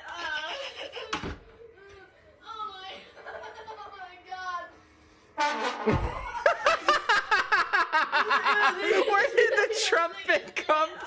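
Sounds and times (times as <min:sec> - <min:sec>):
loud laughter: 0:05.8 - 0:10.1.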